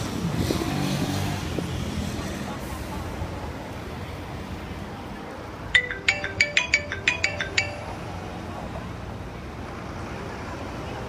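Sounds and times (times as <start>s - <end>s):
city traffic hum: 0.0s - 11.0s
phone ringtone chiming melody: 5.8s - 8.5s.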